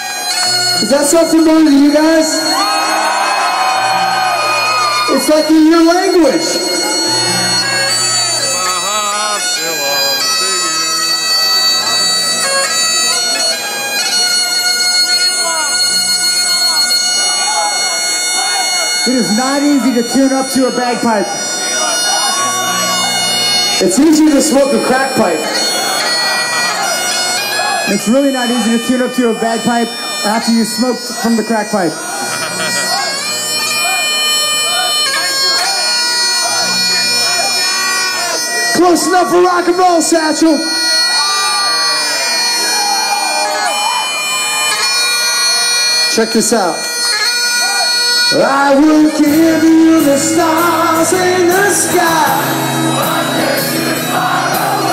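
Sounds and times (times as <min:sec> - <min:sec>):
bagpipes playing a tune: 0:00.0 - 0:54.9.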